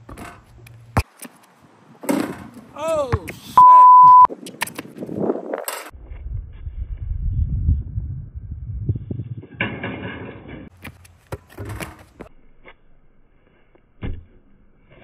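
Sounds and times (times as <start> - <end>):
wind rumbling on microphone: 4.3 - 10.7.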